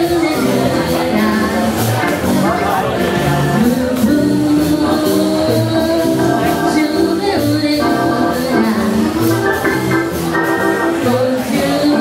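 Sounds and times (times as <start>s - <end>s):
jazz band playing swing: 0.0s - 12.0s.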